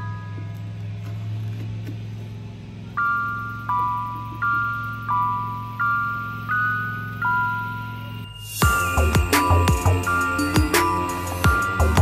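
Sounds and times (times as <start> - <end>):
ringing struck notes melody: 0.0 - 1.0, 2.9 - 12.0
low drone: 0.0 - 12.0.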